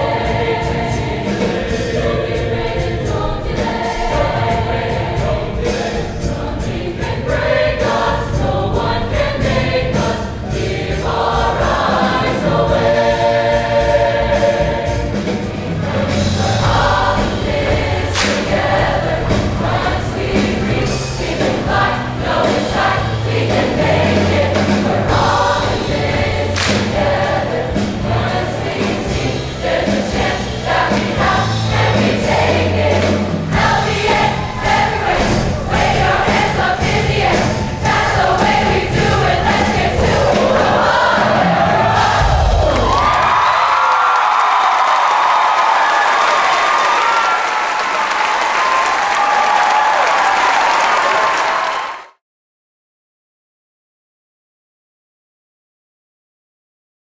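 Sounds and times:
choir singing with accompaniment: 0.0 - 47.2
audience cheering: 41.2 - 52.2.

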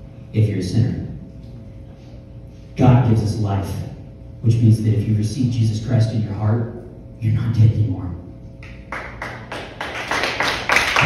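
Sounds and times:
people clapping: 8.6 - 11.0.

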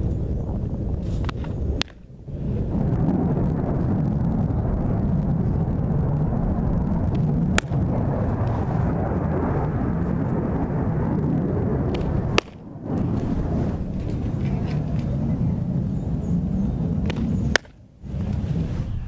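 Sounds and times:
wind rumbling on microphone: 0.0 - 19.0
softball smacking into mitt: 11.9 - 12.6, 17.0 - 17.8.

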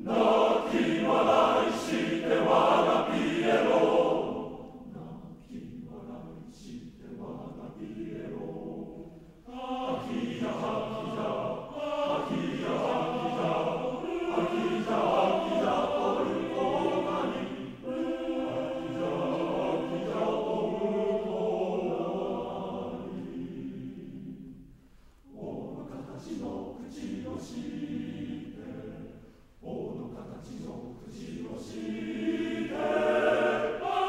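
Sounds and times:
male voice choir singing: 0.0 - 24.5, 25.2 - 34.0.

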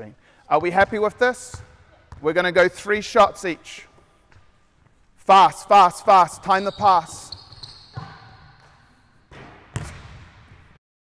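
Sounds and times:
basketball bouncing on wooden floor: 0.6 - 2.3, 6.8 - 10.8.

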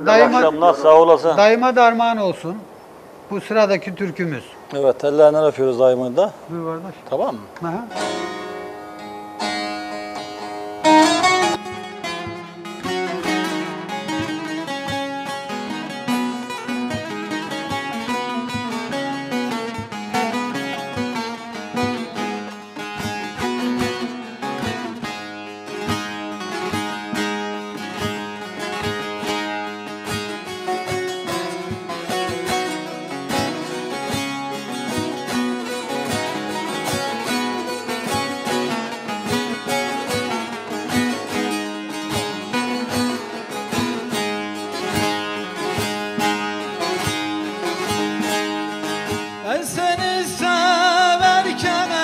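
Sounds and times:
man singing with vibrato: 49.4 - 52.0.

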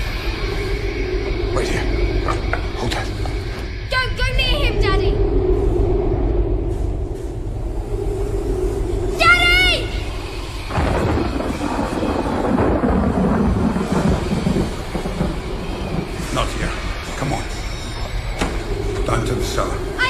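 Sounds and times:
thunder rumbling and cracking: 0.0 - 20.0.

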